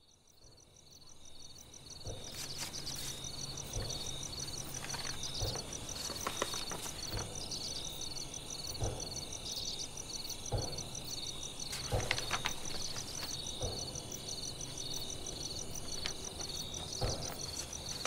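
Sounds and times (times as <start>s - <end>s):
crickets chirping: 0.0s - 18.0s
soft knocks and rustles: 11.7s - 14.0s, 15.8s - 18.0s.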